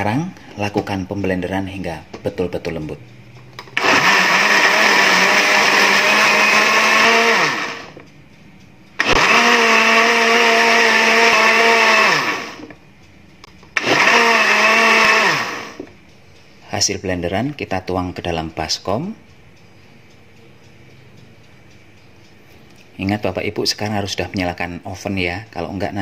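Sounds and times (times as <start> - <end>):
blender running: 3.8 - 8.0, 9.0 - 12.7, 13.8 - 15.9.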